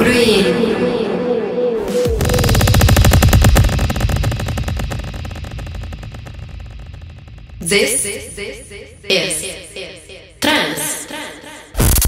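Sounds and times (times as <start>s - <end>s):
deep pulsing electronic buzz: 0.6s - 10.4s.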